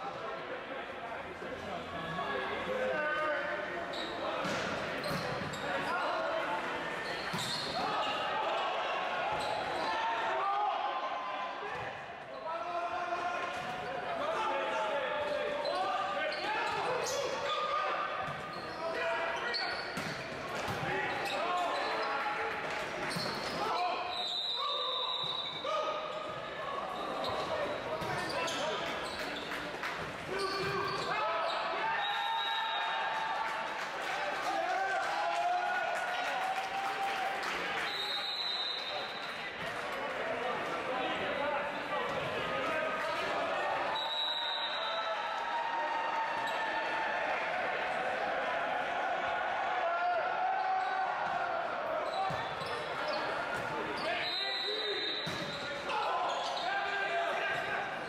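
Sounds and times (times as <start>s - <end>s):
hubbub of voices: 0.0s - 58.0s.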